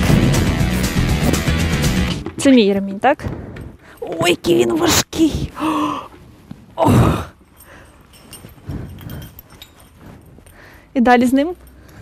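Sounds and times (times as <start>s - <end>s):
gear rustling and clicking: 6.2s - 12.0s.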